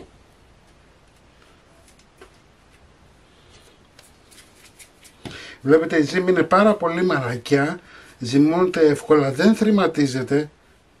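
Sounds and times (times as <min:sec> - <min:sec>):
soft rubbing of dough: 0:00.0 - 0:11.0.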